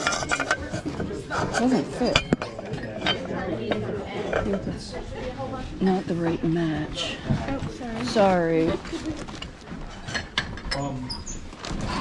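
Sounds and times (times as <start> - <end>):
household items clinking: 0.0 - 4.7
murmur of voices: 0.0 - 12.0.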